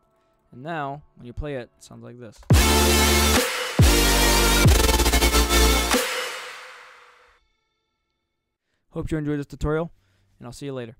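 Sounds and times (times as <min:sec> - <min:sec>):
synth chords: 0:02.5 - 0:07.2.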